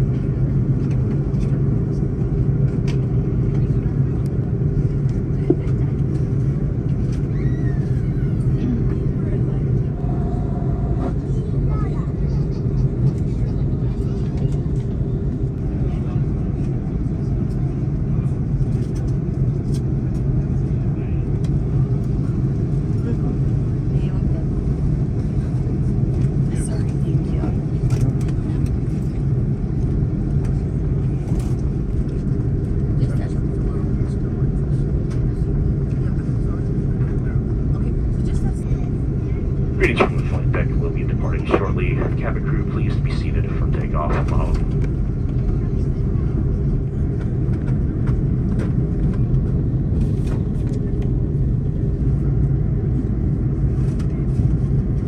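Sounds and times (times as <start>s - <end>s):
jet engine drone: 0.0s - 55.0s
taxi rumble: 9.6s - 11.8s, 39.6s - 45.2s.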